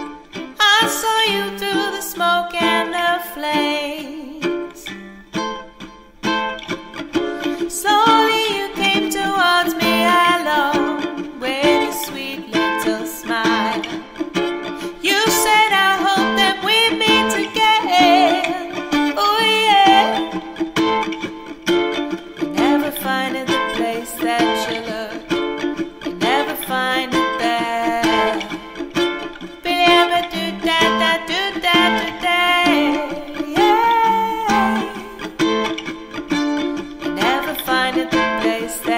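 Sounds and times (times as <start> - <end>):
woman singing: 0.0 - 5.3, 7.3 - 21.0, 22.3 - 38.9
ukulele: 0.0 - 38.9.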